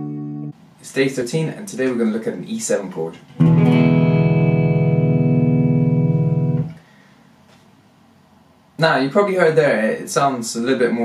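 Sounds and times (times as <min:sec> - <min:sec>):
clean electric guitar chord: 0:00.0 - 0:00.6, 0:03.4 - 0:06.8.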